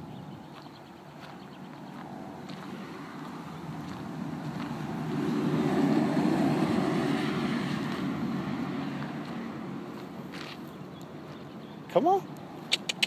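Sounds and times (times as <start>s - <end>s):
motor vehicle passing: 0.0s - 11.8s.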